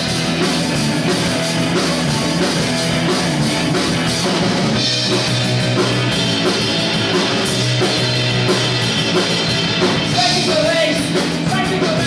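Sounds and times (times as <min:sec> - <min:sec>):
drum kit beat: 0:00.0 - 0:12.0
electric guitars: 0:00.0 - 0:12.0.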